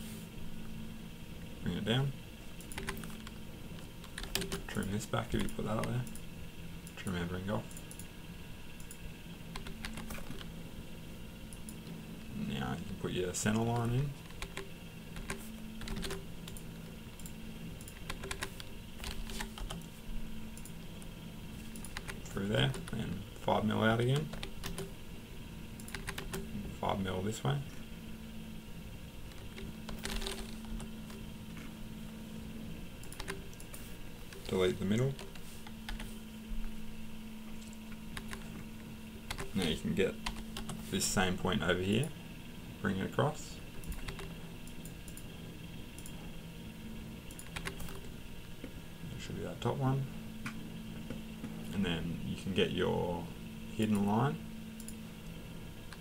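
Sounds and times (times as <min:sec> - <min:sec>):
low steady hum: 0:00.0 - 0:56.0
keyboard and mouse clicks: 0:02.6 - 0:03.4, 0:04.0 - 0:04.7, 0:08.8 - 0:10.5, 0:13.6 - 0:19.9, 0:21.7 - 0:23.0, 0:24.1 - 0:24.9, 0:25.8 - 0:26.5, 0:29.3 - 0:31.7, 0:33.0 - 0:36.1, 0:37.6 - 0:38.6, 0:39.3 - 0:39.6, 0:43.8 - 0:45.2, 0:47.3 - 0:48.1.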